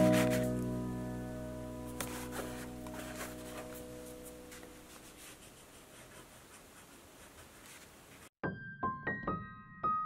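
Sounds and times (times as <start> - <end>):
pencil scratching on paper: 0.0 - 0.5, 2.0 - 8.3.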